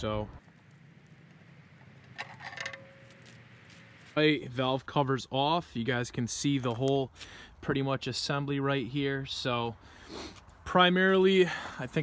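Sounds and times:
faint ringing tone: 2.1s - 4.0s.

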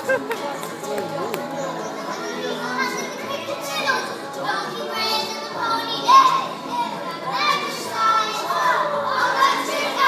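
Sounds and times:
young children's voices: 1.5s - 10.0s.

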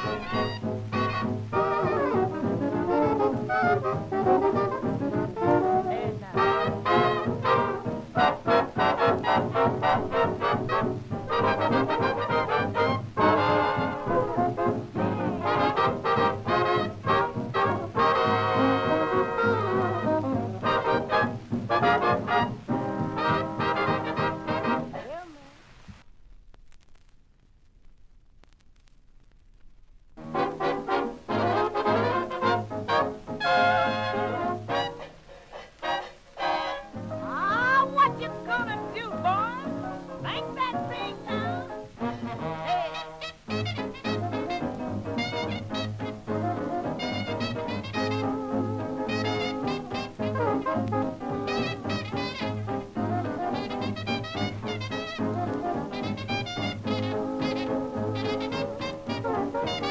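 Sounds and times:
brass horns playing: 0.0s - 25.2s, 30.2s - 59.9s
early jazz band record: 0.0s - 59.9s.

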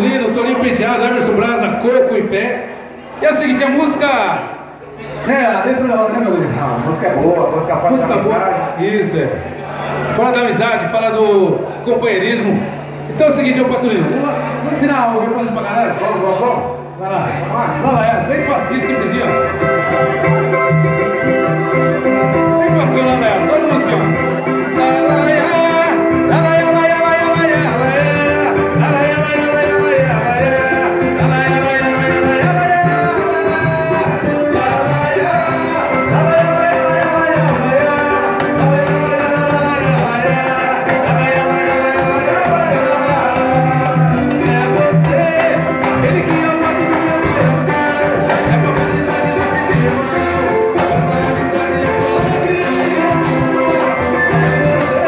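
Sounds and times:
man singing into microphone: 0.0s - 2.8s, 13.4s - 55.0s
cavaquinho: 0.0s - 55.0s
strummed acoustic guitar: 9.4s - 55.0s
samba band playing: 17.2s - 55.0s.

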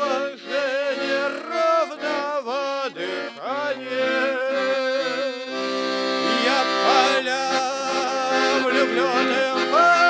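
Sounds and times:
accordion chords: 0.0s - 10.0s.

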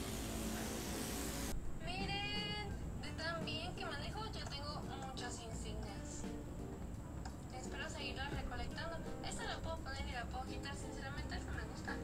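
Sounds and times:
noisy hiss: 0.0s - 12.0s.

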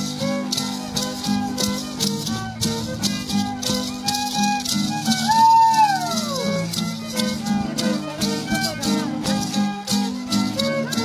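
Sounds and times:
hand rattles shaking: 0.0s - 11.0s
violin and guitar tune: 0.0s - 11.0s.

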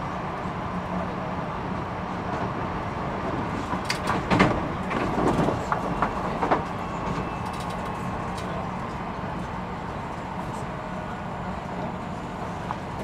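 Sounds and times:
train running noise: 0.0s - 13.0s
wheels clacking on track: 1.7s - 13.0s.

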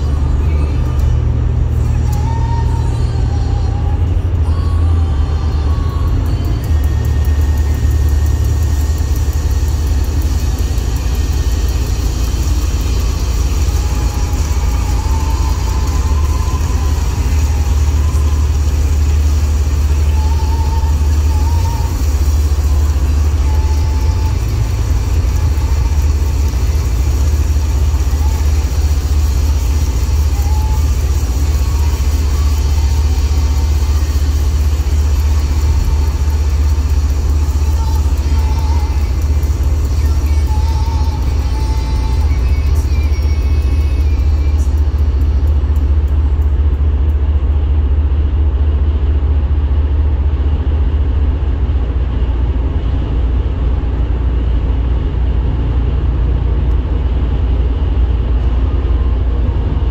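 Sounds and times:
car cabin road rumble: 0.0s - 59.9s.

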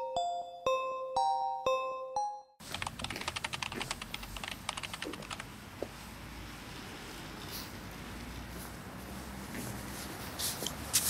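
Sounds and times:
keyboard typing clicks: 2.7s - 5.5s.

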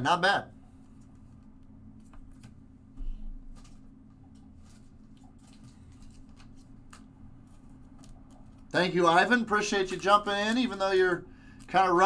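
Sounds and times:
low steady hum: 0.0s - 12.0s
trading cards clicking and sliding: 3.5s - 8.7s.

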